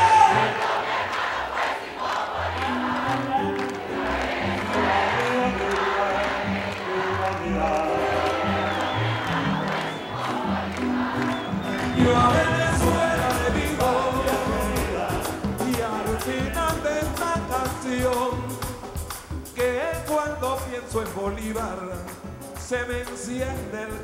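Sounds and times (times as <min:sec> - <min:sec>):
crowd singing and shouting: 0:00.0 - 0:24.0
live band music: 0:01.6 - 0:24.0.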